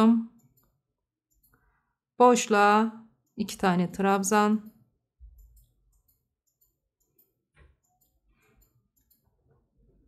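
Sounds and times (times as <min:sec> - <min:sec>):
crochet hook ticking and rustling: 0:05.2 - 0:09.6.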